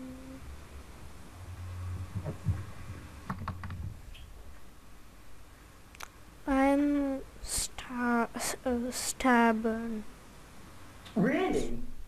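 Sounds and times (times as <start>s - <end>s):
low steady hum: 0.0s - 12.0s
thump: 2.1s - 2.7s.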